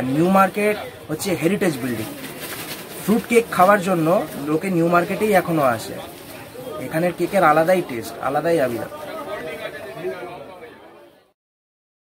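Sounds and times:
background chatter: 0.0s - 11.4s.

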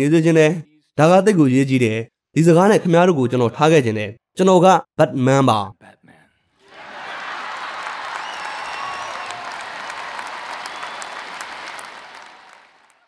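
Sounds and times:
audience applauding: 6.6s - 13.0s.

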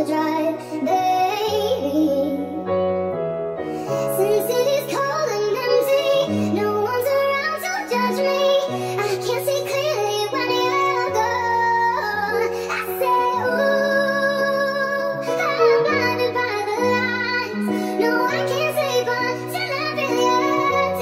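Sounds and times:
high-pitched female vocal singing: 3.9s - 21.0s.

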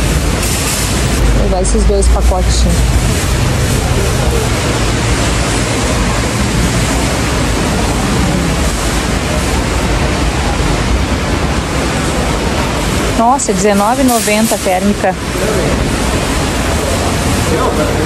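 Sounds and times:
low hum: 0.0s - 13.6s
supermarket background din: 0.0s - 18.0s.

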